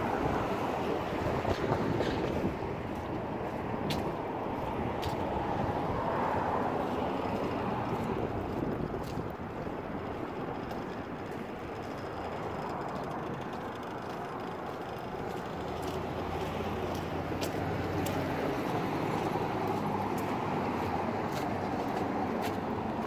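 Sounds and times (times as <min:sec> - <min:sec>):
car passing by: 0:00.0 - 0:09.2, 0:15.5 - 0:23.0
vehicle engine rumble: 0:00.0 - 0:23.0.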